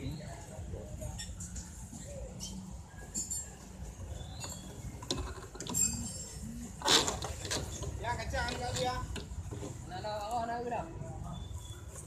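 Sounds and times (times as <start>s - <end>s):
metallic clinks and scraping: 1.1s - 9.1s.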